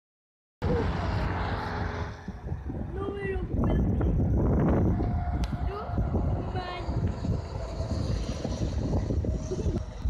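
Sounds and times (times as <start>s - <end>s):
highway traffic rumble: 0.6s - 10.0s.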